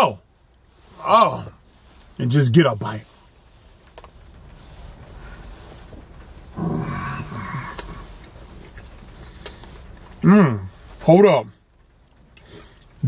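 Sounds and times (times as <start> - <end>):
man humming mmm: 6.6 - 8.1, 10.2 - 10.7.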